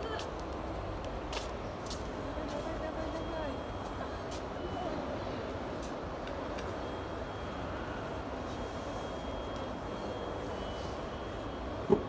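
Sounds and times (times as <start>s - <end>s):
distant indistinct voices: 0.0s - 12.0s
terminal hall hum: 0.0s - 12.0s.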